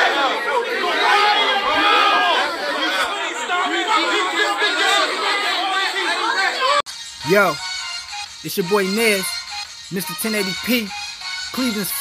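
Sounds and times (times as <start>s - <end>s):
crowd chatter: 0.0s - 7.6s.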